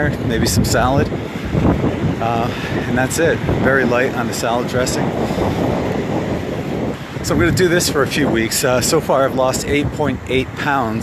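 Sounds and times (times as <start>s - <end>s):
rushing wind on microphone: 0.0s - 11.0s.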